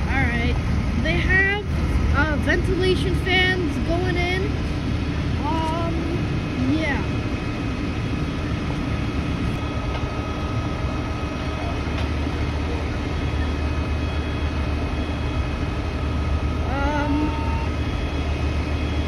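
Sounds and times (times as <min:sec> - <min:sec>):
fire truck engine idling: 0:00.0 - 0:19.0
ventilation fans humming: 0:00.0 - 0:19.0.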